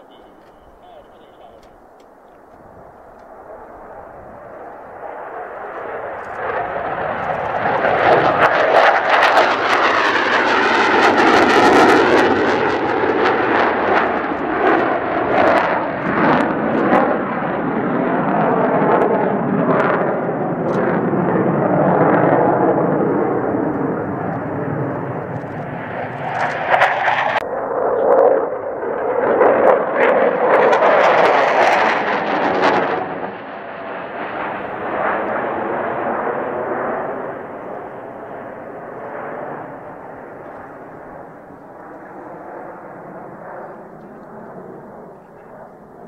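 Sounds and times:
jet engines roaring: 0.0s - 46.0s.

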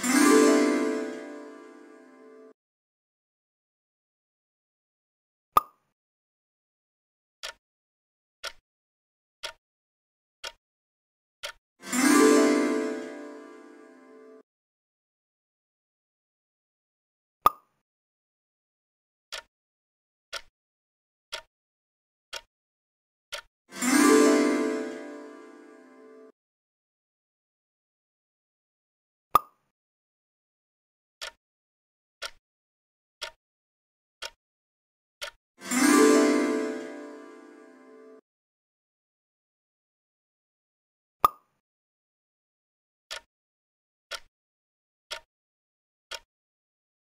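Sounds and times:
cartoon pop sound effect: 17.4s - 17.7s, 29.3s - 29.6s.

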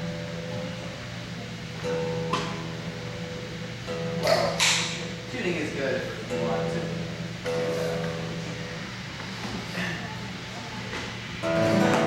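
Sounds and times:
acoustic guitar strummed: 0.0s - 9.2s, 11.3s - 12.0s.

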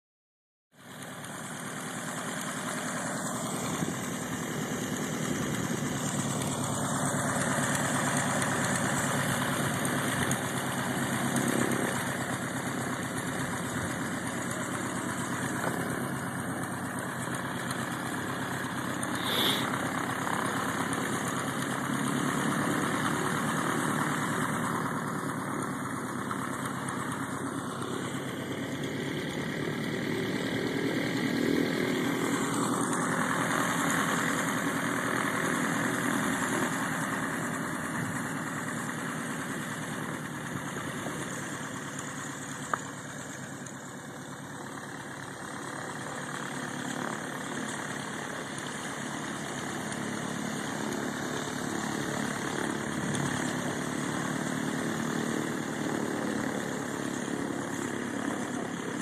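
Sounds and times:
light aircraft engine and propeller: 0.7s - 59.0s.

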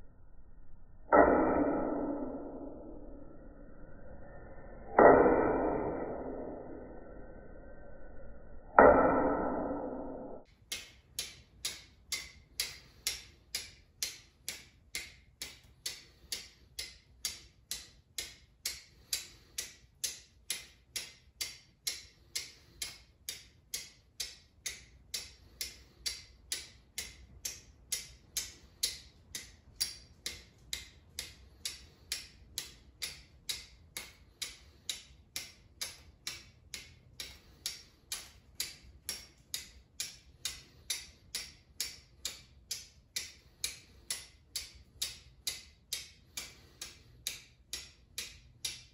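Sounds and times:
steel striker clicking on flint: 10.5s - 48.9s.

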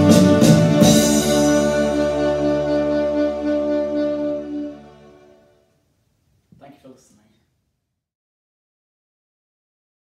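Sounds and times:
backing track low chord: 0.0s - 5.6s
saxophone with vibrato: 0.0s - 5.6s.

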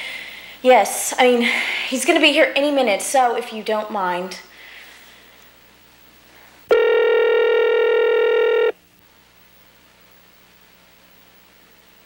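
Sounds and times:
cordless telephone ringing: 6.7s - 8.7s.

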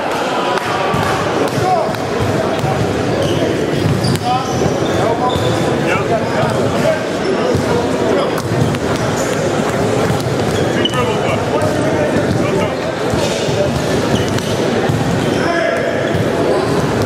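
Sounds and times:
chatter and calls of people: 0.0s - 17.0s
basketballs bouncing on hardwood: 0.9s - 5.6s, 7.5s - 17.0s.

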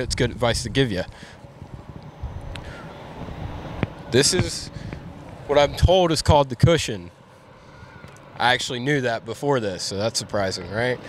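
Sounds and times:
wind buffeting microphone: 0.0s - 6.9s.

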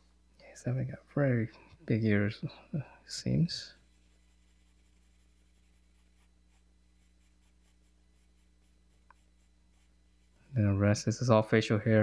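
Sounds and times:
low electrical hum: 0.0s - 12.0s
pencil scratching on paper: 3.9s - 10.4s.

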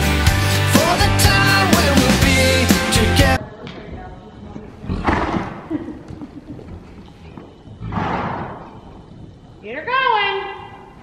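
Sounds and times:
horse snorting: 4.7s - 7.1s, 7.7s - 8.8s.

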